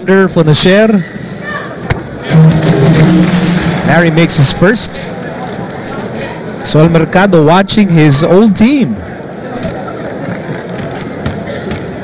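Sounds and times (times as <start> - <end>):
arena crowd noise: 0.0 - 12.0.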